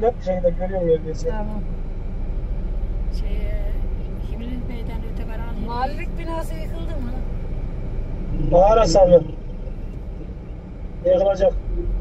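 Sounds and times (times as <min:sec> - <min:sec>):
diesel engine rumble in car cabin: 0:00.0 - 0:12.0.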